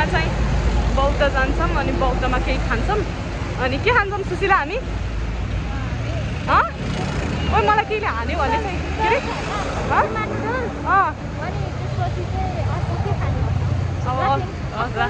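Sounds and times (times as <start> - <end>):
traffic rumble: 0.0 - 15.0
voices: 0.0 - 15.0.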